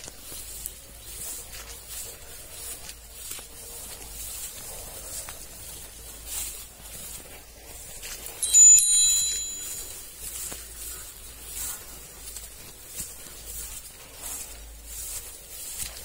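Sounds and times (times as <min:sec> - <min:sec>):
faint rustling: 0:00.0 - 0:16.0
bright metallic chime: 0:08.4 - 0:10.2.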